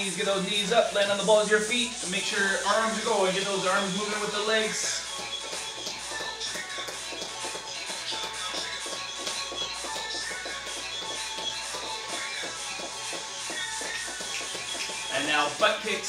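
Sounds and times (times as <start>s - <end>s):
workout music with steady beat: 0.0s - 16.0s.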